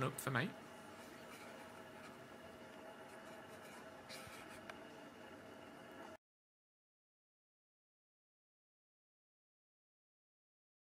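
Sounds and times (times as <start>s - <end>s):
steady hiss with low hum: 0.0s - 6.2s.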